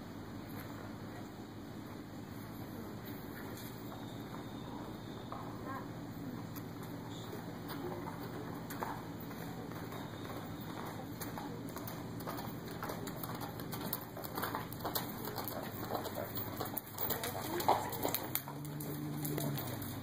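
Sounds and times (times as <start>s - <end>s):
low arena hum: 0.0s - 20.0s
horse hoofbeats: 3.4s - 5.7s, 6.3s - 20.0s.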